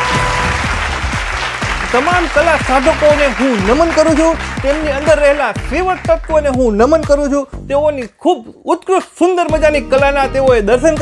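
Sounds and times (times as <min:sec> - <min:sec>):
applause: 0:00.0 - 0:06.7
background music: 0:00.0 - 0:11.0
man speaking: 0:01.9 - 0:11.0.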